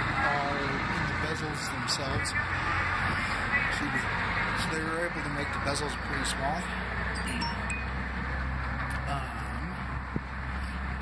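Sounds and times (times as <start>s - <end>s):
high ringing tones: 7.1s - 8.2s.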